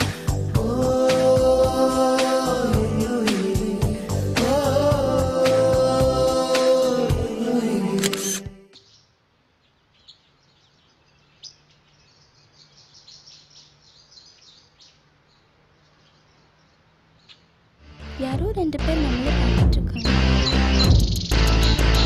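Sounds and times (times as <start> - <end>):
background music: 0.0 - 8.7, 17.8 - 22.0
high bird chirps: 8.2 - 17.6, 20.0 - 22.0.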